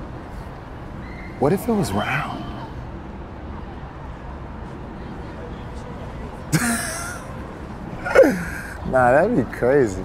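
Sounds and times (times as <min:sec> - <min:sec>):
outdoor background noise: 0:00.0 - 0:10.0
man's vocal outburst: 0:06.6 - 0:07.2, 0:08.0 - 0:08.8.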